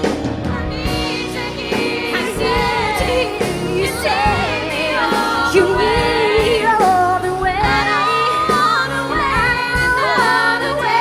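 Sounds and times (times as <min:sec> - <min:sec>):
band playing: 0:00.0 - 0:11.0
woman singing: 0:00.5 - 0:11.0.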